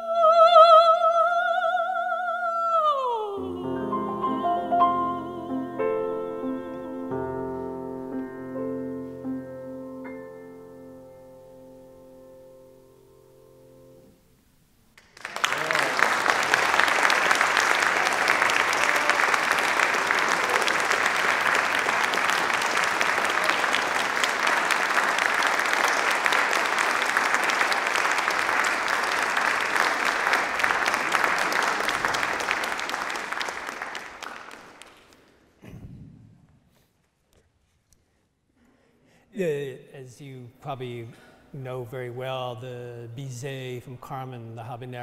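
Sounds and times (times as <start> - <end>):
audience applauding: 15.0 - 35.5.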